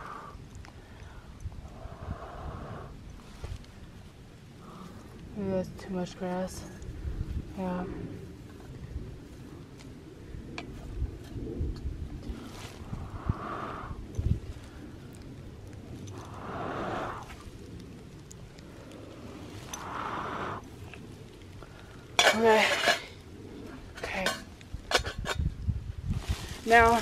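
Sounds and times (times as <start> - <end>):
breaths blown onto embers: 12.3 - 23.3
dry leaves rustling: 12.4 - 13.7, 18.4 - 21.6, 26.0 - 27.0.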